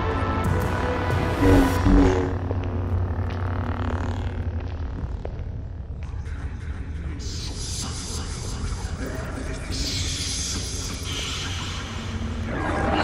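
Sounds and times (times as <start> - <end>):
low rumbling drone: 1.2 - 6.2.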